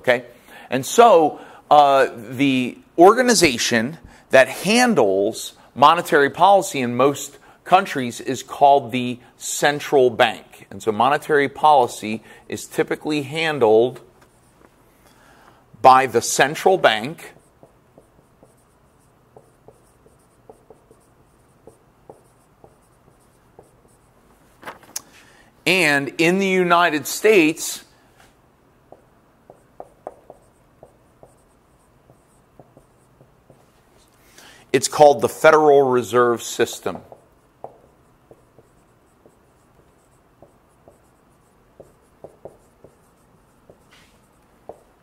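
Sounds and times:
marker squeaking on whiteboard: 14.2 - 14.7, 16.0 - 24.2, 28.9 - 34.1, 36.0 - 45.0.

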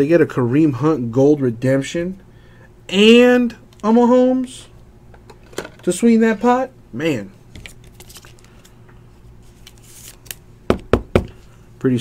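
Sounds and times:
cards rustling and sliding: 7.5 - 10.5.

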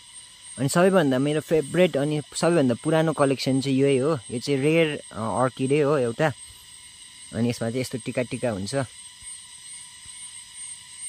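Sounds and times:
faint background hiss: 0.0 - 11.0
thin high hum: 0.0 - 11.0.

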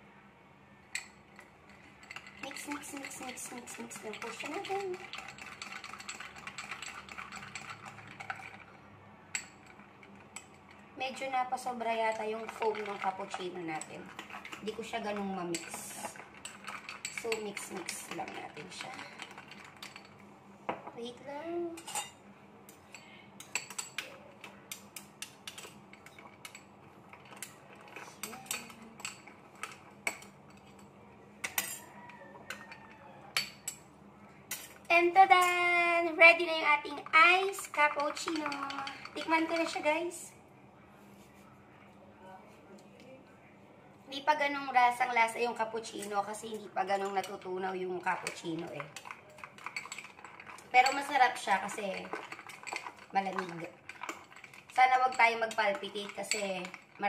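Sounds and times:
spoon clinking ice and glass: 2.0 - 8.7, 24.7 - 30.8, 31.4 - 33.8, 48.0 - 57.0
metal spoon clinking in glass: 21.8 - 22.2, 28.2 - 30.8, 47.0 - 57.0.

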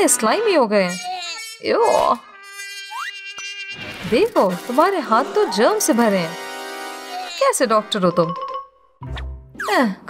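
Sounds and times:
buzzing insect-like sound effect: 0.0 - 8.2.

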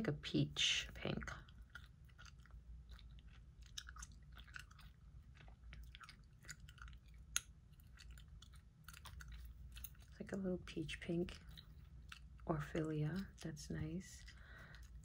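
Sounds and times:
gum chewing: 1.2 - 10.3, 11.0 - 13.5, 14.2 - 15.0.

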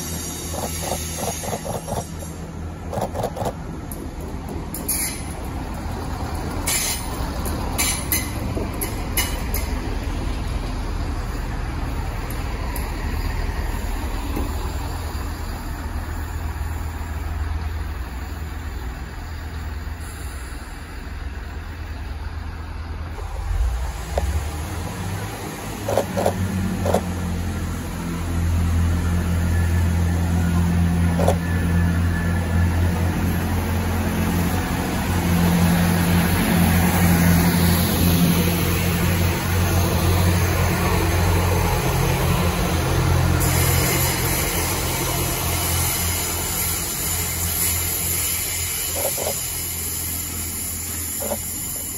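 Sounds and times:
train diesel engines droning: 0.0 - 51.9.

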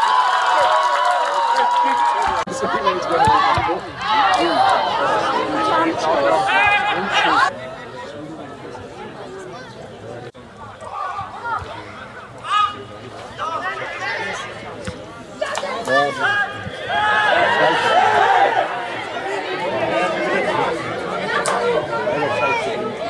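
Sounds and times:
crowd chatter and calls: 0.0 - 23.0.

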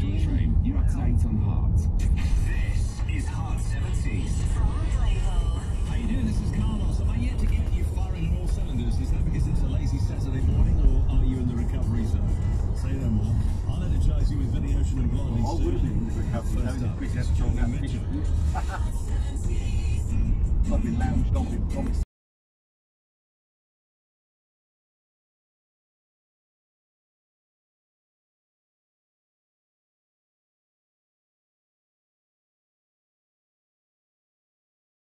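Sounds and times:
car engine rumble: 0.0 - 22.0
car radio playing music: 0.0 - 22.0
tyres on road: 0.0 - 22.0
voice over radio music: 0.0 - 22.1.

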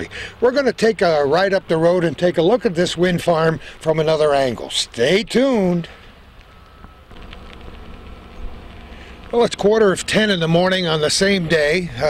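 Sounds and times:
faint hiss: 3.4 - 12.0.

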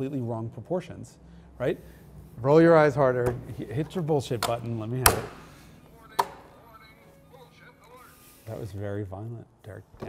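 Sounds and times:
hand smacking push button: 3.2 - 5.5, 6.2 - 6.5.

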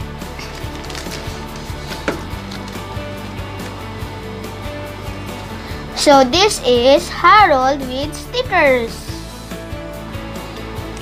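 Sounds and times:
soft background music: 0.0 - 11.0
cellophane crinkling clicks: 0.4 - 2.9.

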